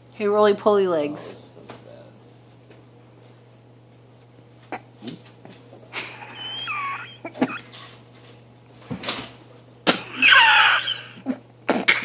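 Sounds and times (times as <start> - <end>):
toddler squealing: 6.3 - 7.6, 10.1 - 11.2.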